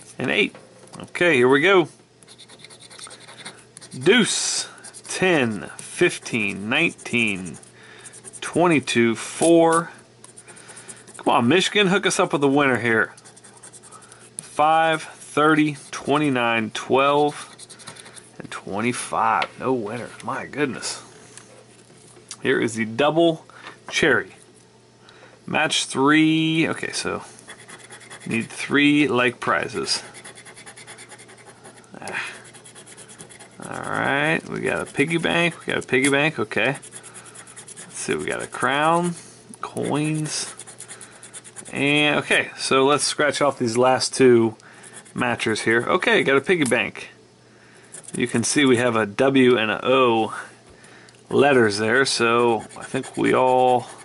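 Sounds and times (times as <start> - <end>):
metal tool scraping lottery ticket: 2.3 - 8.6, 32.4 - 42.0, 48.0 - 48.5, 51.6 - 54.0.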